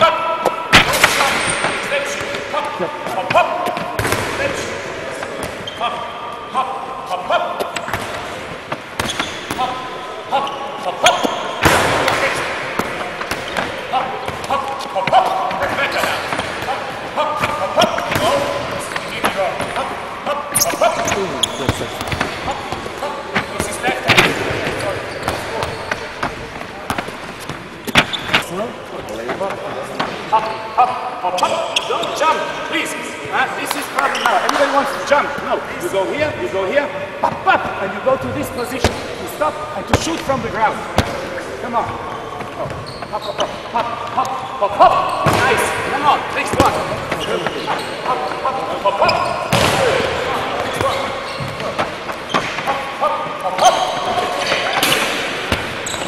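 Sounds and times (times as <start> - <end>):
voices talking: 0.0 - 56.0
balls bouncing on wooden floor: 11.1 - 16.8, 20.6 - 28.6, 49.2 - 52.8.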